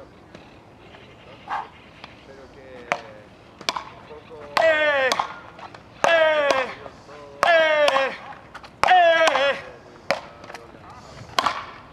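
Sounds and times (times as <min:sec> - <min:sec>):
paddle cracking against ball: 0:02.8 - 0:06.8, 0:07.4 - 0:10.7, 0:11.3 - 0:11.9
person shouting: 0:04.6 - 0:05.2, 0:06.0 - 0:09.8.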